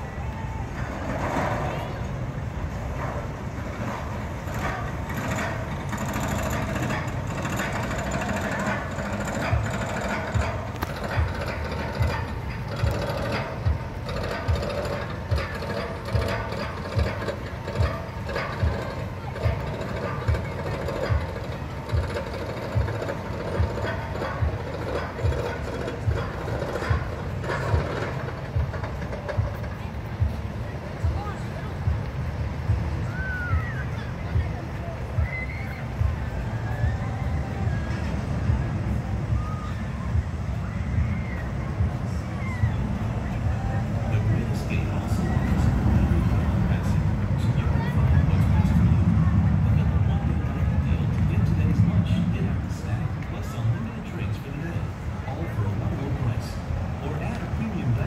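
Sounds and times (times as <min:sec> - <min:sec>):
roller coaster lift hill clacking: 0:00.0 - 0:58.0.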